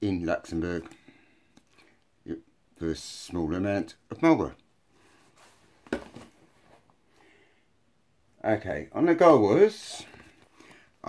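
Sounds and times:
faint rustling: 4.9s - 7.3s.

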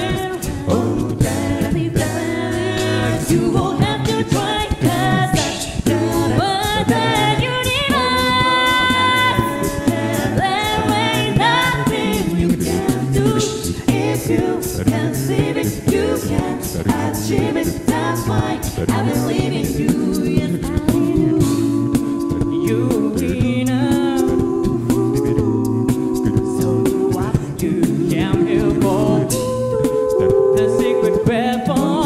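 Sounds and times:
beatboxed percussion: 0.0s - 32.0s
lead singing voice: 0.0s - 32.0s
sung bass line: 0.0s - 32.0s
vocal harmonies: 0.0s - 32.0s.

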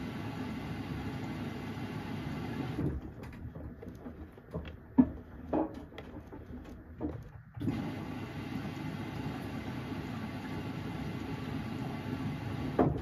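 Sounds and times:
washing machine running: 0.0s - 13.0s.

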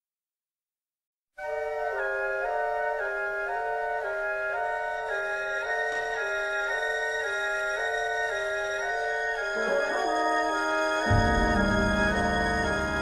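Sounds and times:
flute chords: 1.4s - 13.0s.

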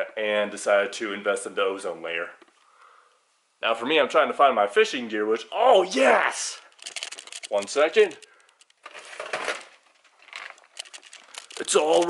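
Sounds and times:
gear rustling: 6.0s - 12.0s
light clicks and clatters: 6.6s - 12.0s.

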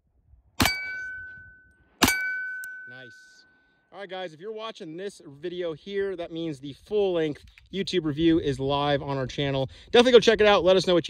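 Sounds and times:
pistol shot: 0.6s - 1.2s, 2.0s - 2.8s
steel target ringing: 0.6s - 3.6s.

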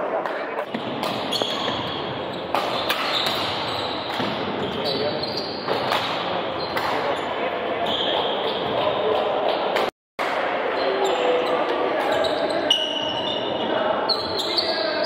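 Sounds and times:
voices echoing in hall: 0.0s - 15.0s
racket hitting shuttlecock: 0.2s - 1.9s, 2.5s - 4.6s, 5.7s - 7.2s
shoes squeaking on court: 0.8s - 9.8s, 10.8s - 15.0s.

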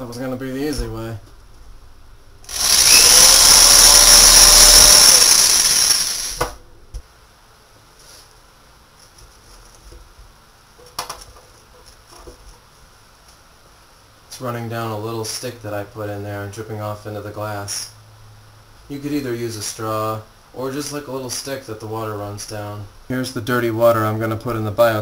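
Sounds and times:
cordless drill boring plastic: 2.5s - 6.6s.

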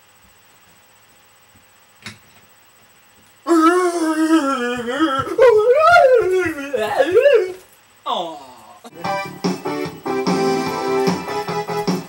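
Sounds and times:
person howling: 3.5s - 8.9s.

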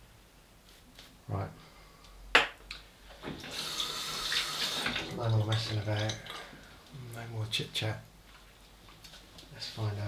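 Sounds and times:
water running from a tap: 3.4s - 6.5s.

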